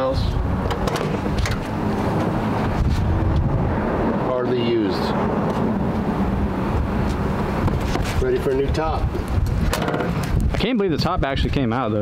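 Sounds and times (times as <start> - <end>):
steady low rumble: 0.0 - 11.5.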